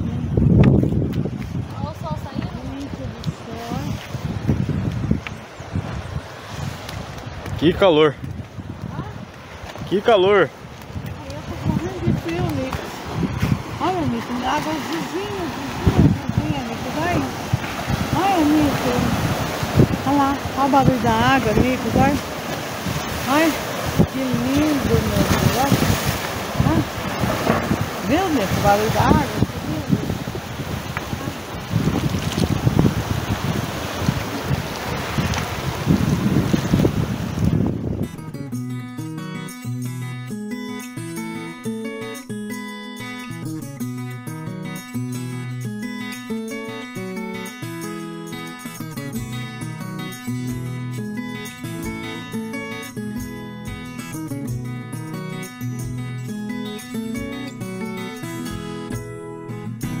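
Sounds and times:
sea waves washing over rocks: 0.0s - 38.0s
wind buffeting microphone: 0.0s - 39.4s
instrumental music: 37.4s - 60.0s.

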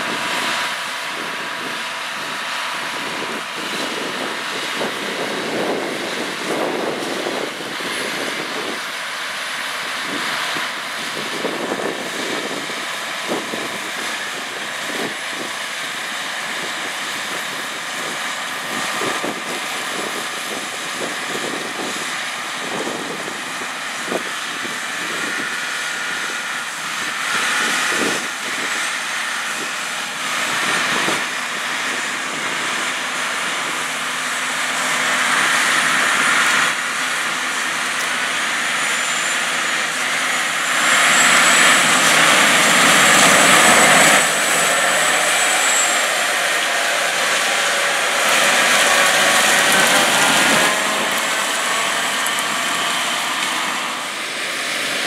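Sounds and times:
combine harvester working: 0.0s - 55.0s
tractor engine and tracks: 0.0s - 55.0s.

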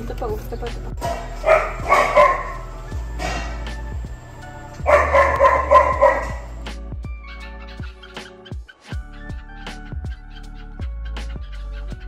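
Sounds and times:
background music: 0.0s - 12.0s
puppy crying: 1.2s - 2.7s, 4.8s - 12.0s.

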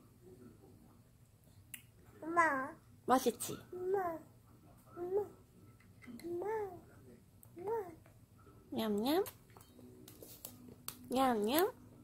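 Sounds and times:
baby babbling: 2.2s - 2.8s, 3.8s - 4.3s, 5.0s - 5.4s, 6.2s - 6.8s.

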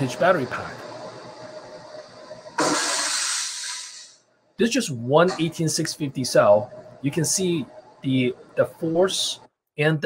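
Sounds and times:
battery venting hiss and sparks: 2.6s - 4.2s.

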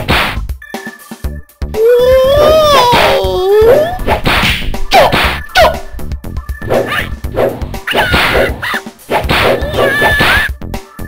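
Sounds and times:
whacking hits: 0.0s - 0.4s, 4.1s - 5.4s, 6.7s - 10.4s.

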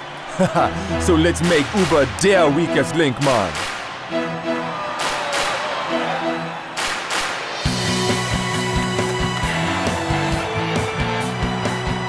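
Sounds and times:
stadium crowd noise: 0.0s - 12.0s
heavy music hits: 6.9s - 12.0s.

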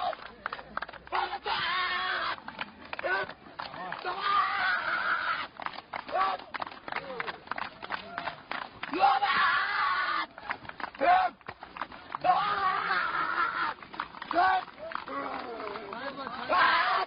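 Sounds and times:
people calling out: 0.0s - 17.0s.

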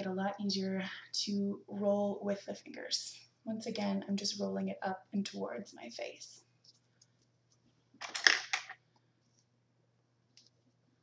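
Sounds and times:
hair roller clicking and rustling: 8.0s - 8.8s.

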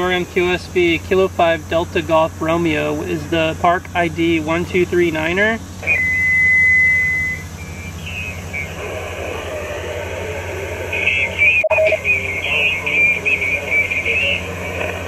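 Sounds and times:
radio static hiss: 0.0s - 15.0s
steady high tone: 5.1s - 14.8s
garbled radio voice: 8.0s - 15.0s.

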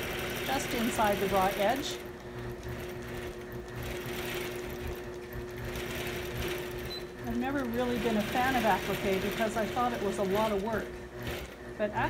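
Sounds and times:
needle mechanism rumble: 0.0s - 12.0s
quilting machine motor hum: 0.0s - 12.0s.

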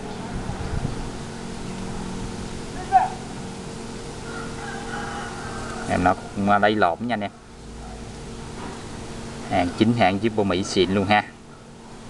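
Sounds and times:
low background hum: 0.0s - 12.0s
distant bird calling: 0.9s - 9.4s, 10.6s - 12.0s
man speaking: 5.9s - 7.4s, 9.5s - 11.4s.

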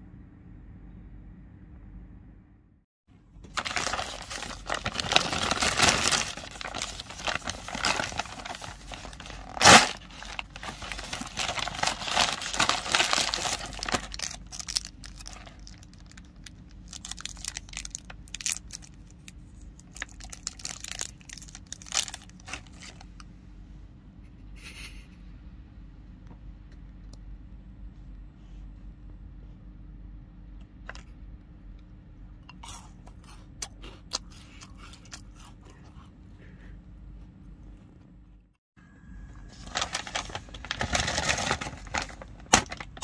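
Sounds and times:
plastic packaging crinkling and tearing: 3.4s - 23.2s, 39.5s - 43.0s.

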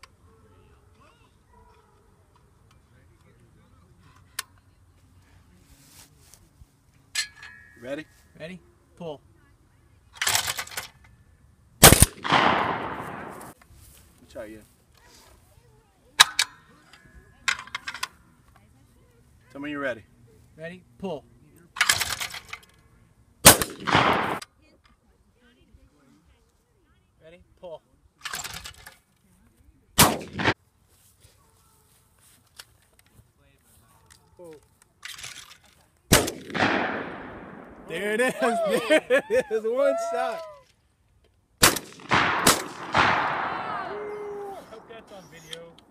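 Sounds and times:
shotgun shot: 11.8s - 13.6s, 23.4s - 24.4s, 30.0s - 30.6s, 36.1s - 38.0s, 41.6s - 44.0s.

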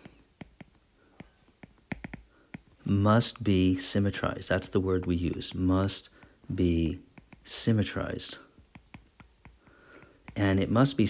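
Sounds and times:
stylus tapping on glass screen: 0.0s - 2.9s, 7.0s - 7.8s, 8.5s - 10.8s.

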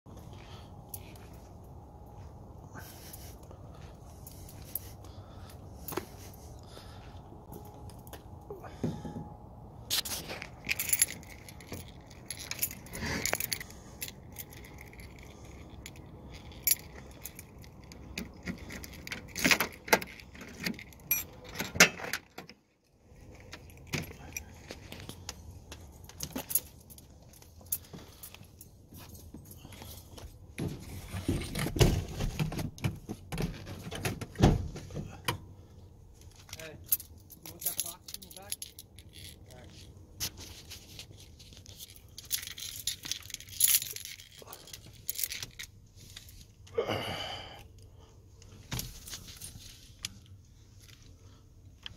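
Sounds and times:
keys jangling: 10.0s - 22.4s, 26.0s - 30.2s, 36.2s - 39.9s, 40.9s - 46.3s.

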